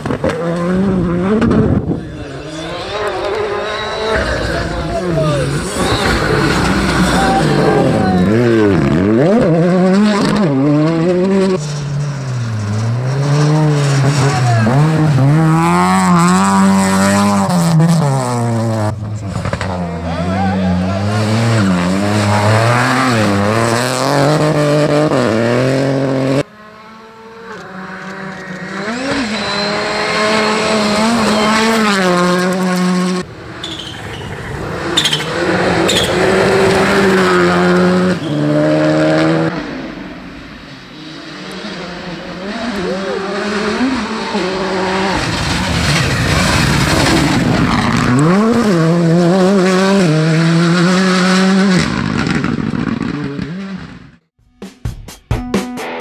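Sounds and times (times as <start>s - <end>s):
rally car engine revving: 0.0s - 54.3s.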